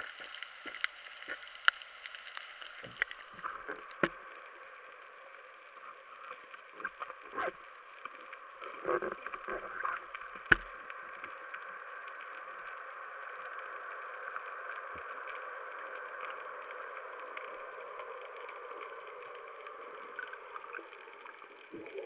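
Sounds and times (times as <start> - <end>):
muffled underwater hiss: 0.0 - 22.0.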